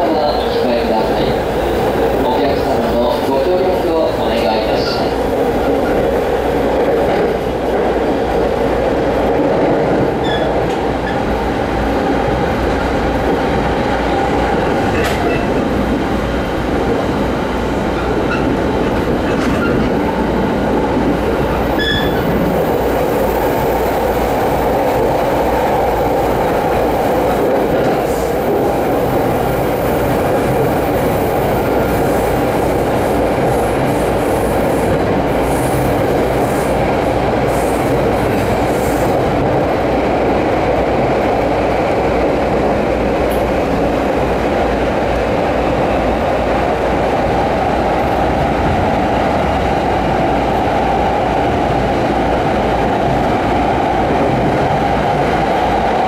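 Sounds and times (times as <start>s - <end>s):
train wheels rumbling on rails: 0.0s - 56.0s
high wheel squeaks: 21.8s - 22.2s.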